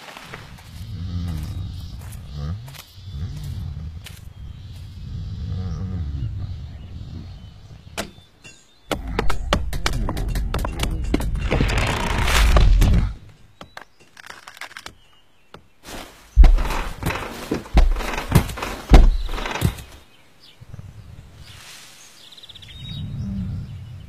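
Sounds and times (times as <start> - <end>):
stone cracking and crumbling: 9.1 - 15.0
heavy low thuds: 16.4 - 19.9.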